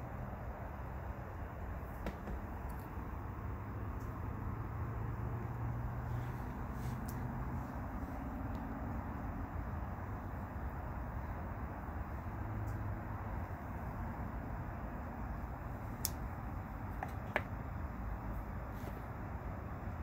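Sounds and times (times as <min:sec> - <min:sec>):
low outdoor rumble: 0:00.0 - 0:20.0.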